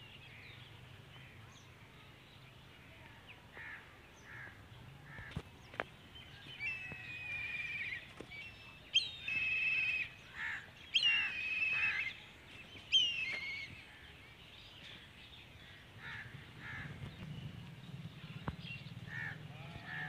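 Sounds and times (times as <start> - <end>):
birds calling: 0.0 - 20.0
drawn-out buzzy bird calls: 8.9 - 14.1.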